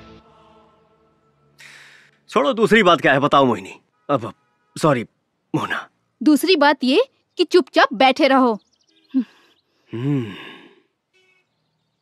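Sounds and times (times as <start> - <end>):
man sighing: 9.9 - 10.8.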